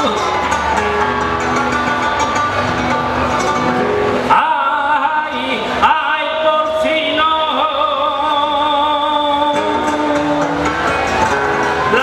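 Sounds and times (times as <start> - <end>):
flamenco guitar playing: 0.0 - 12.0
man singing flamenco: 4.2 - 11.0.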